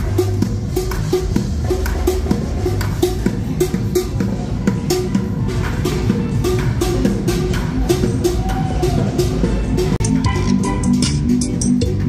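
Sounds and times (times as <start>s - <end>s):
drumming on buckets and pot: 0.0s - 12.0s.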